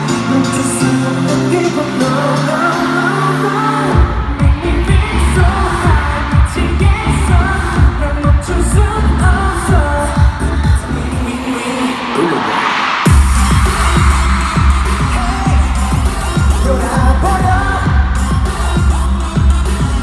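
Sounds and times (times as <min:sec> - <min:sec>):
pop song over sound system: 0:00.0 - 0:20.0
heavy kick drum beat: 0:13.1 - 0:20.0.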